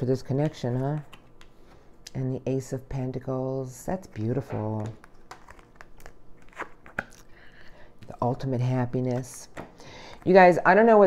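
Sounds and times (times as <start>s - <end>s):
cards clicking and rustling: 4.8s - 7.3s.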